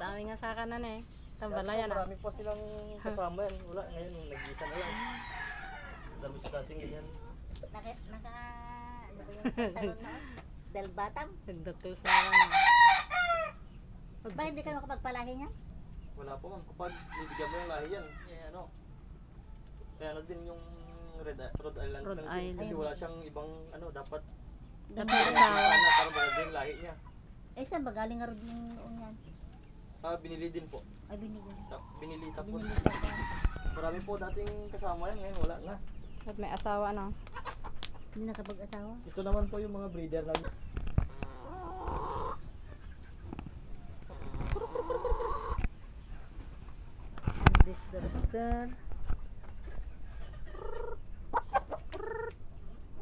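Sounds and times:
chickens clucking: 0.0s - 53.0s
rooster crowing: 4.2s - 6.4s, 12.0s - 13.6s, 16.8s - 18.4s, 25.0s - 26.9s, 32.5s - 34.1s.

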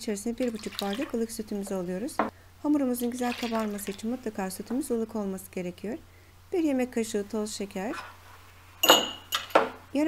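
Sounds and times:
ceramic dishes clinking on table: 8.8s - 9.7s.

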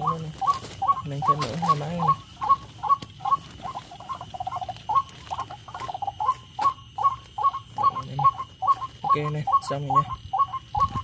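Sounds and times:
bird calls through loudspeakers: 0.0s - 11.0s.

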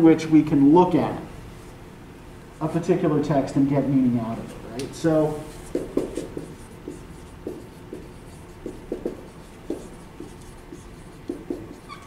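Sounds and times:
marker writing on a whiteboard: 5.2s - 12.0s.

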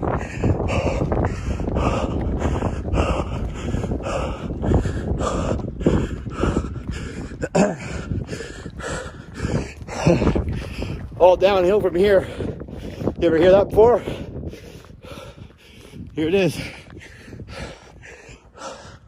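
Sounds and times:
man panting: 0.0s - 19.0s.

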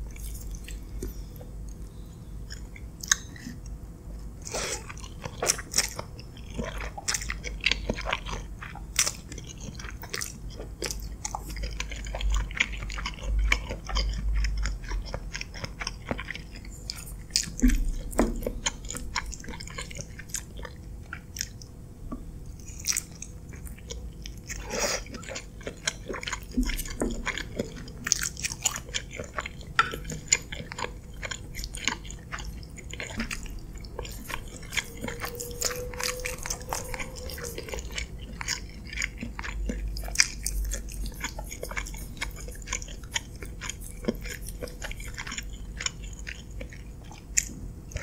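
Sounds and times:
chewing spaghetti: 0.0s - 48.0s.

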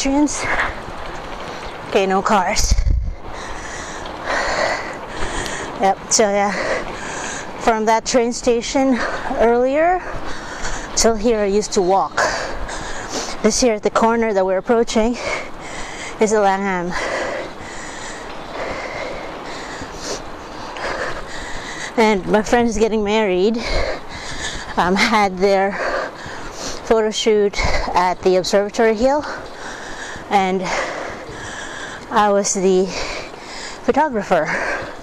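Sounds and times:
wind noise on microphone: 0.0s - 17.4s, 18.2s - 33.1s
person breathing hard: 3.1s - 5.8s, 6.4s - 7.6s, 8.9s - 11.0s, 12.2s - 13.4s, 15.1s - 16.2s, 16.8s - 22.1s, 23.5s - 26.9s, 27.5s - 28.0s, 29.2s - 35.0s.

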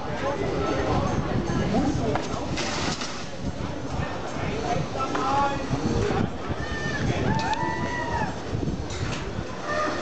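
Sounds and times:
crowd shouting and chatter: 0.0s - 10.0s.

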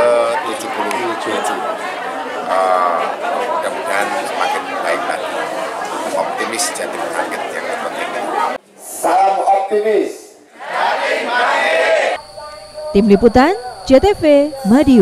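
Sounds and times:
man talking: 0.0s - 1.6s, 2.5s - 5.3s, 6.1s - 10.4s
chatter of many voices: 0.0s - 15.0s.

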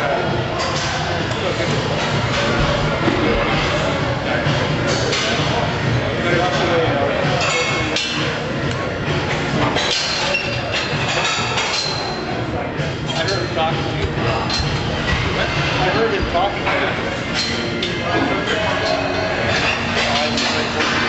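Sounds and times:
background music: 0.0s - 21.0s
people talking: 0.0s - 21.0s.

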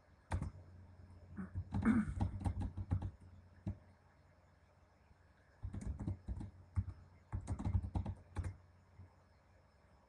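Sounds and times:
keyboard typing: 0.3s - 0.6s, 1.4s - 3.8s, 5.6s - 9.1s.

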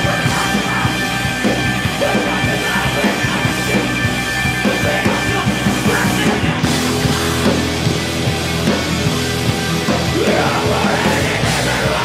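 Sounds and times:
rock band playing loud: 0.0s - 12.0s.

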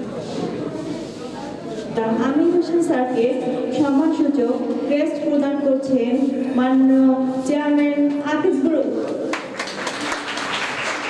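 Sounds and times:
crowd applauding: 9.3s - 11.0s.

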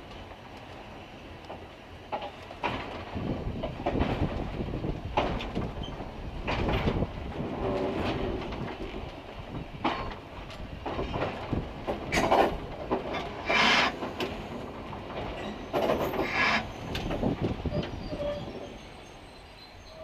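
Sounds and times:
railway car rumbling: 0.0s - 20.0s
wheels clacking over rail joints: 0.0s - 20.0s.

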